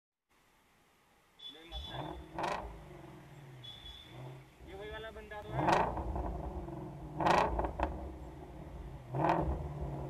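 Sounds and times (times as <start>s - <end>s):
road noise: 0.3s - 10.0s.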